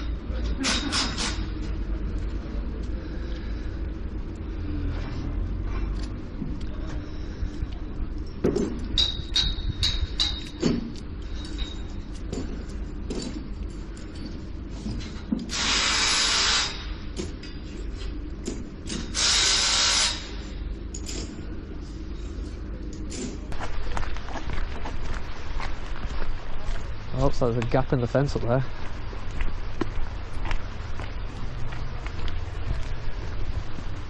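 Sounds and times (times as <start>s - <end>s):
low rumble: 1.4s - 15.4s
knocks and clatter: 8.4s - 15.5s
power tool bursts: 15.5s - 16.9s, 19.1s - 20.4s.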